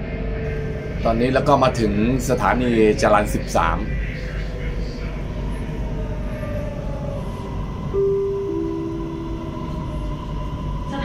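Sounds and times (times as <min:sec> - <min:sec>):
thin whine: 0:00.0 - 0:11.0
train rumbling: 0:00.0 - 0:11.0
two-note falling chime: 0:07.9 - 0:10.3.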